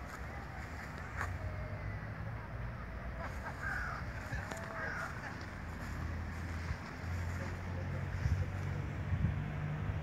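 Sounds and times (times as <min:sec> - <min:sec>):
low outdoor rumble: 0:00.0 - 0:10.0
harsh bird calls: 0:03.2 - 0:05.4.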